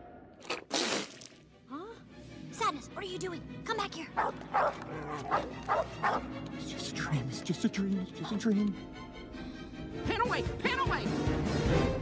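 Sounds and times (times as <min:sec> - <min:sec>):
dog barking: 0:04.2 - 0:06.3.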